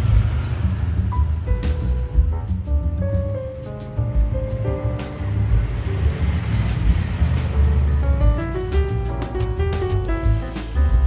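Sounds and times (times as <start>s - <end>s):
slow background melody: 0.0s - 11.0s.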